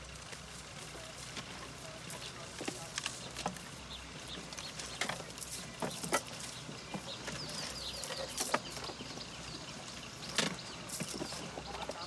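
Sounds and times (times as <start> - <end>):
grass and gear rustling: 0.0 - 12.0
outdoor ambience: 0.0 - 12.0
bird chirping: 1.8 - 12.0.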